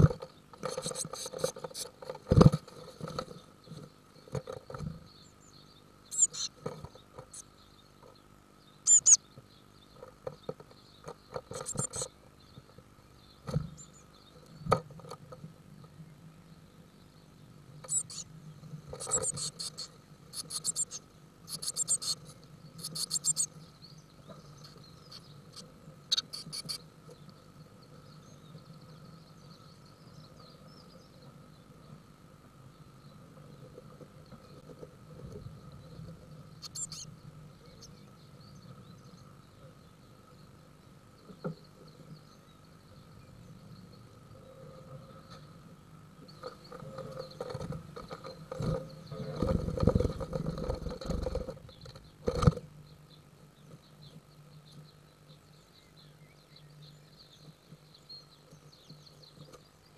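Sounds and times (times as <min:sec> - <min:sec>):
blue tits chattering: 0:00.0 - 0:16.0, 0:16.8 - 0:32.0, 0:32.7 - 0:59.9
faint steady hum: 0:00.0 - 0:59.9.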